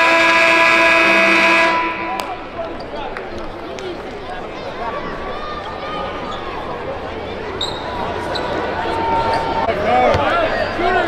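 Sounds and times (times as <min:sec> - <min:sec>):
game clock horn blast: 0:00.0 - 0:02.6.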